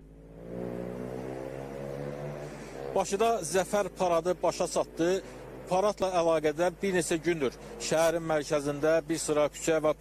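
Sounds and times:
cars driving past: 0.1s - 9.0s
car accelerating by: 0.2s - 5.9s.

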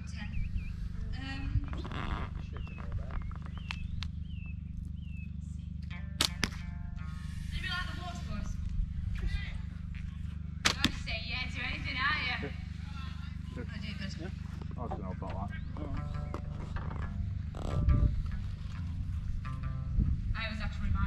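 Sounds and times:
steady low hum: 0.0s - 21.0s
sharp cracks: 6.1s - 6.8s, 10.6s - 11.2s.

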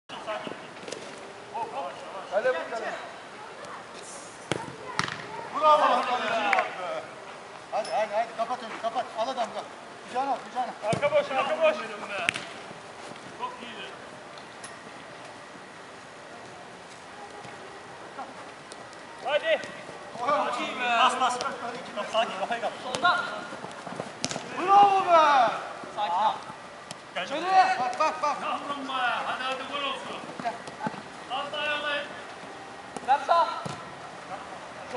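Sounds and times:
football being kicked: 10.8s - 11.2s, 24.2s - 24.5s, 33.0s - 33.9s
players shouting: 24.3s - 26.5s.

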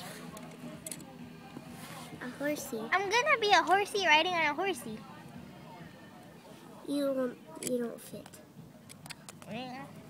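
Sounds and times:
quiet outdoor background noise: 0.0s - 10.0s.

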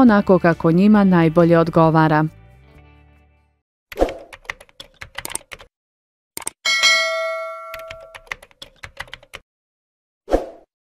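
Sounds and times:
notification bell ding: 6.7s - 8.3s.

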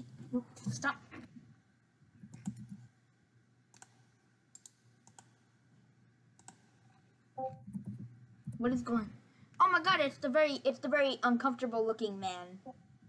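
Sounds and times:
computer mouse clicks: 2.2s - 2.9s, 3.7s - 5.4s, 6.4s - 8.6s.

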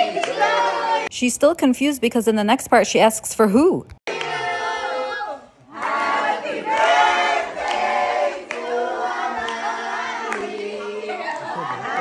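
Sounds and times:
group singing long notes: 0.0s - 1.1s, 4.1s - 12.0s.

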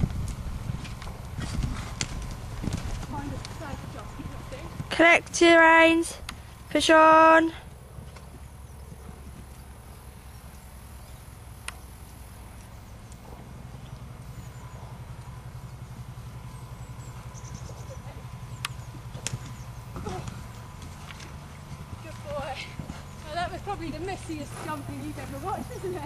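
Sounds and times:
muffled hoofbeats on sand: 0.0s - 5.1s, 7.7s - 10.6s, 12.0s - 26.0s
sharp clicks: 11.6s - 11.8s, 18.6s - 19.6s.

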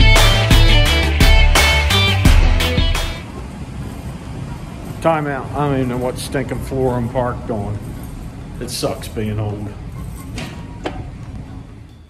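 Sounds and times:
music: 0.0s - 3.2s.

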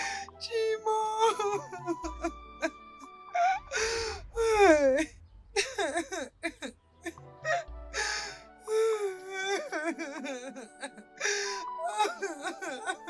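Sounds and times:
woman crying and sobbing: 0.0s - 2.7s, 3.4s - 6.7s, 7.5s - 13.0s
deep bass notes: 3.6s - 8.0s.

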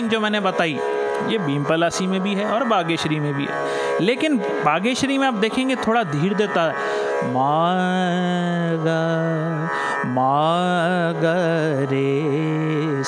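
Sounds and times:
man singing classical vocal phrase: 0.0s - 13.0s.

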